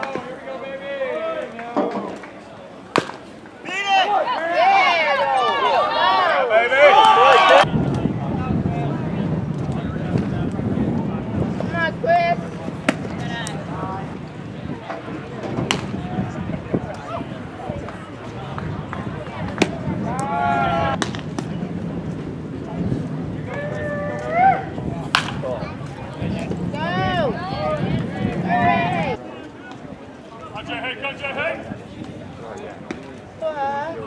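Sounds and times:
bat cracking against ball: 2.9s - 3.3s, 15.4s - 16.0s, 21.0s - 21.5s, 25.1s - 25.4s
players shouting: 2.9s - 7.8s, 16.9s - 21.0s, 23.4s - 29.2s
wind rumbling on microphone: 7.1s - 29.2s, 29.8s - 34.0s.

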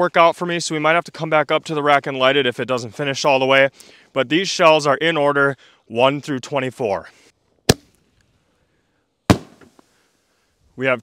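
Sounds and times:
firework mortar launch bang: 9.3s - 9.8s.

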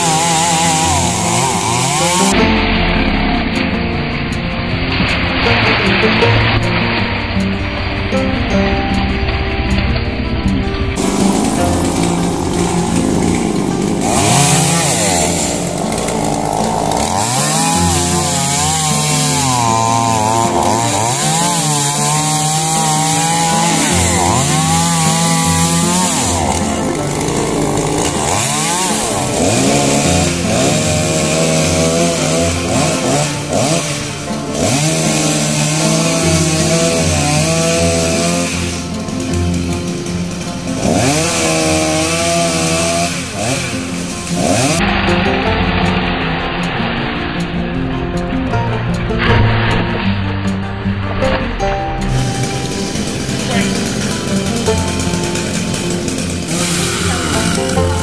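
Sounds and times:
chainsaw revving: 0.0s - 4.0s, 10.9s - 48.6s, 51.8s - 58.0s
background music: 0.0s - 58.0s.

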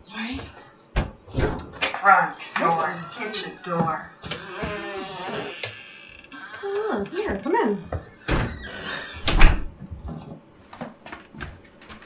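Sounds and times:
door banging shut: 8.3s - 9.7s.

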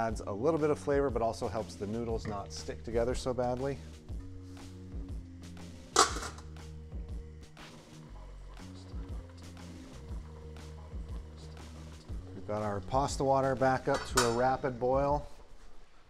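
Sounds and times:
background music with low chords: 0.0s - 16.0s.

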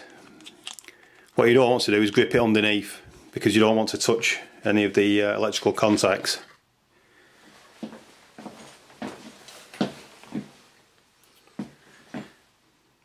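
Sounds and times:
plastic crackles and clicks: 0.3s - 1.4s.

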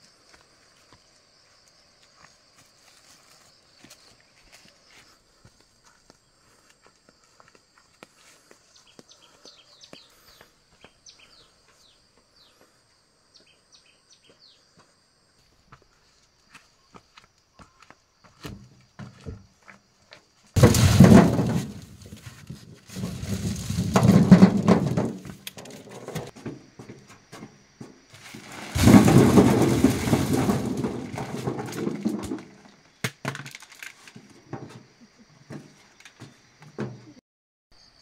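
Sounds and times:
corn clattering into truck bed: 20.6s - 34.9s.

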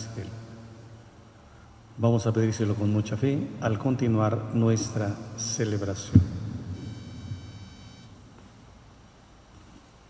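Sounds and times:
faint room noise: 0.0s - 10.0s
high electronic beep: 6.8s - 8.1s.

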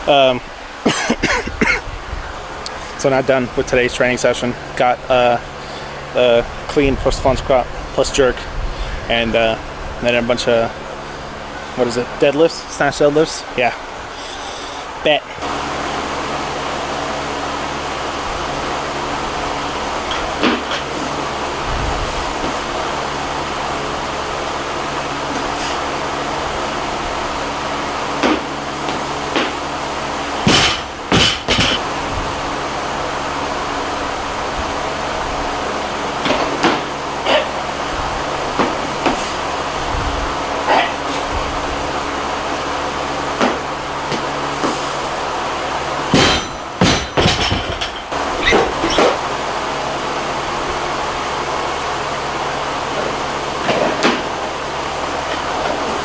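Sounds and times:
steady background hum: 0.0s - 56.0s
barbell plates clanking and thudding: 30.5s - 31.8s, 46.1s - 49.2s.

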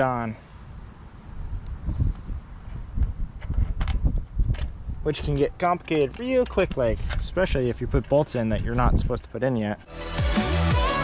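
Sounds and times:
wind rumble on microphone: 0.7s - 5.6s, 6.4s - 9.3s.

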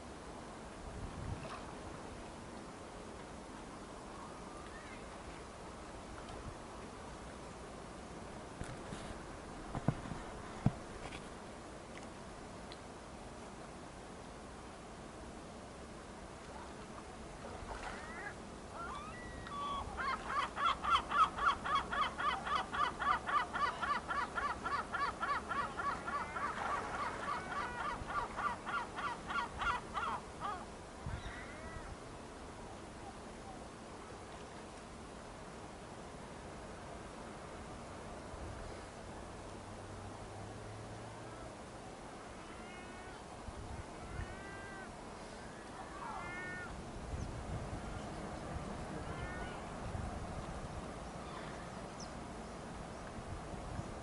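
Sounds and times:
bird mewing call: 17.8s - 31.9s.

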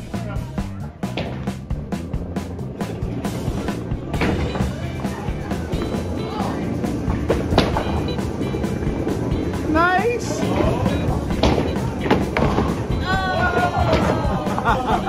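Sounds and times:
background music with steady beat: 0.0s - 15.0s
bowling ball rolling: 0.9s - 15.0s
bowling pins crashing: 2.8s - 4.9s, 5.7s - 9.6s, 10.3s - 14.7s.

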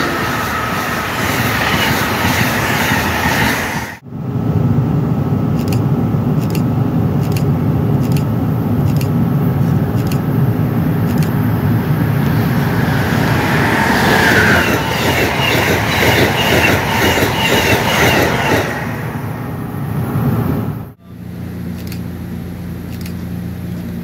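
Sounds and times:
passenger train rumbling past: 0.0s - 21.6s.

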